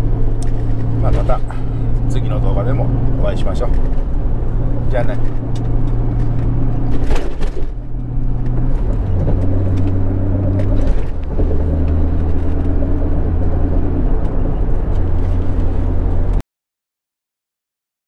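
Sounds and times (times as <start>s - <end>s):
car engine running: 0.0s - 16.4s.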